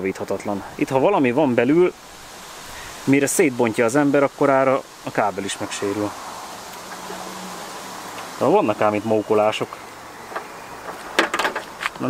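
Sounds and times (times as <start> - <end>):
wiring harness clicking and rattling: 10.3 - 12.0.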